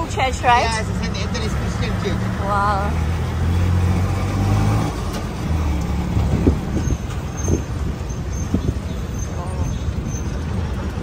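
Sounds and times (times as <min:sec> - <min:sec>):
heavy vehicle engine running: 0:00.0 - 0:11.0
street traffic: 0:00.0 - 0:11.0.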